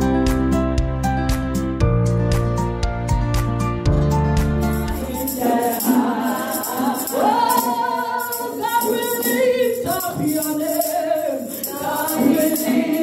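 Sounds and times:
backing music: 0:00.0 - 0:07.9
shaking percussion beat: 0:02.3 - 0:13.0
woman singing into microphone: 0:05.0 - 0:13.0.

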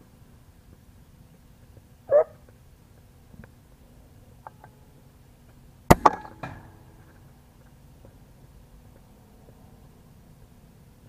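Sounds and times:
air rifle shot crack: 0:05.9 - 0:07.2.

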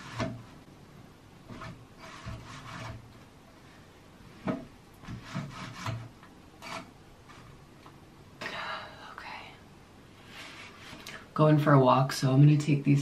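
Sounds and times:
picture frame scraping against wall: 0:00.0 - 0:00.6, 0:01.5 - 0:03.2, 0:04.4 - 0:07.6.

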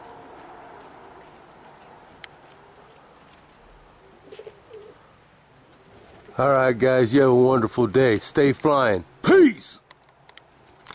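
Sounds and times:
pigeon cooing: 0:03.6 - 0:06.4.

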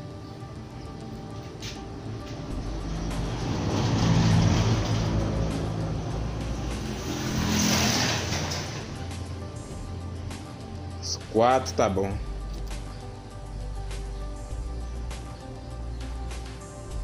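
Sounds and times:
background music: 0:00.0 - 0:17.0
motor vehicle passing: 0:01.1 - 0:11.0.

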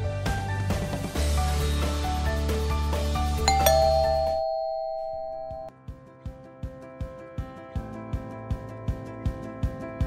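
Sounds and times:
background music: 0:00.0 - 0:05.7
two-note doorbell chime: 0:03.5 - 0:05.7.

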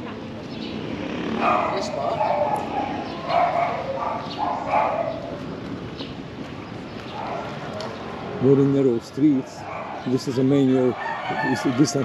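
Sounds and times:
dog barking: 0:01.4 - 0:05.4, 0:07.1 - 0:07.6, 0:09.6 - 0:10.2.

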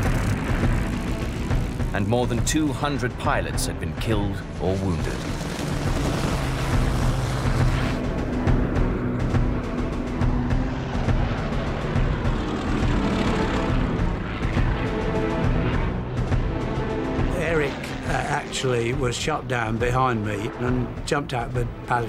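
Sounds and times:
documentary music: 0:00.0 - 0:22.0
propeller aircraft engine drone: 0:00.0 - 0:22.0.

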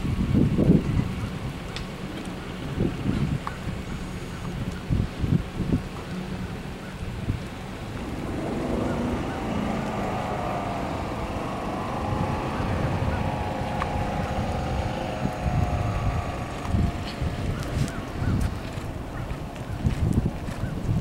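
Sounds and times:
wind buffeting microphone: 0:00.0 - 0:21.0
distant engine droning: 0:06.8 - 0:20.7.

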